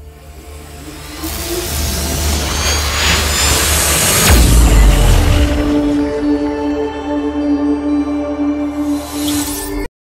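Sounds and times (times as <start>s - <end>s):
low drone: 0.0s - 9.9s
deep bass hit: 4.2s - 6.3s.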